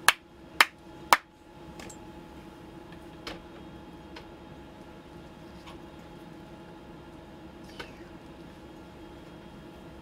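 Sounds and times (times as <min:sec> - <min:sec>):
ventilation hum: 0:00.0 - 0:10.0
sharp hand claps: 0:00.1 - 0:01.3.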